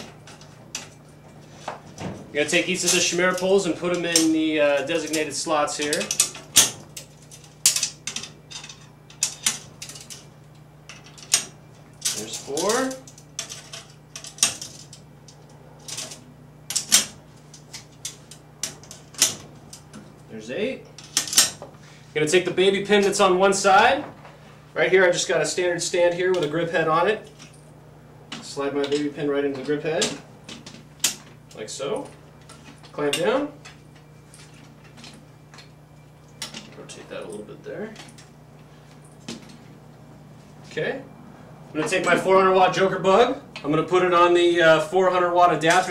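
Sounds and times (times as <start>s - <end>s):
steady low hum: 0.0s - 45.9s
metal poles clicking and clinking: 2.5s - 10.3s, 10.9s - 20.0s.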